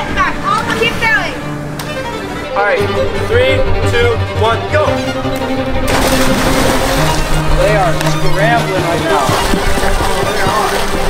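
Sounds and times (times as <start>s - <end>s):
background music: 0.0s - 11.0s
churning water: 5.8s - 11.0s
bodies splashing into pool: 5.9s - 7.5s, 9.1s - 11.0s.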